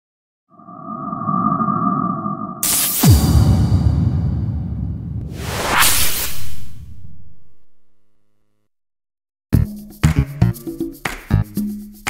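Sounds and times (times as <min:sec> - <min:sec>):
whoosh: 0:00.6 - 0:07.7
falling boom hit: 0:02.6 - 0:05.4.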